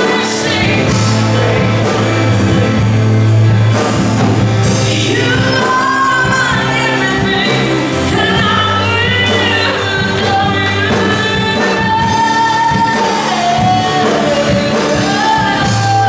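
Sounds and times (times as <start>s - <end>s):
voices singing: 0.0s - 3.6s
worship band playing: 0.0s - 16.0s.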